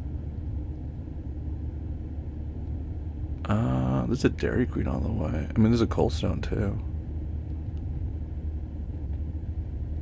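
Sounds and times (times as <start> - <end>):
car cabin road and engine noise: 0.0 - 10.0.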